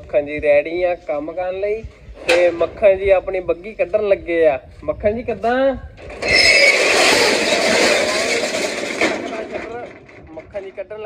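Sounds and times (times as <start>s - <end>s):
metal roller shutter rattling: 6.0s - 11.0s.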